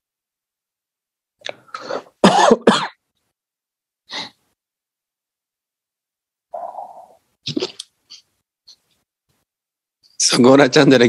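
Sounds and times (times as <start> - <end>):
person coughing: 2.2 - 3.0.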